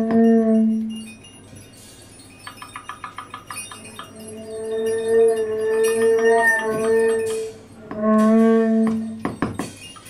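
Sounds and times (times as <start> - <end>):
metallic drum kit clinks: 0.0 - 8.4, 9.0 - 10.0.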